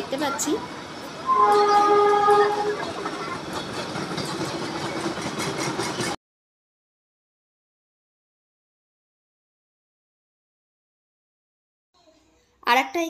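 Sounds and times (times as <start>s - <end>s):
train rumbling and clattering: 0.0s - 6.2s
train horn blast: 1.2s - 3.2s.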